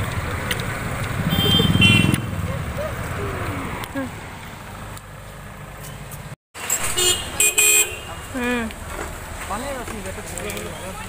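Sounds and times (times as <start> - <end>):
low road traffic noise: 0.0 - 11.0
vehicle horn honking: 1.3 - 2.4, 6.6 - 8.2.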